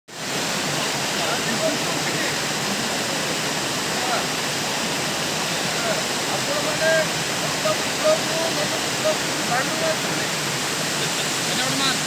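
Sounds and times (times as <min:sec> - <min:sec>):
waterfall rushing: 0:00.1 - 0:12.0.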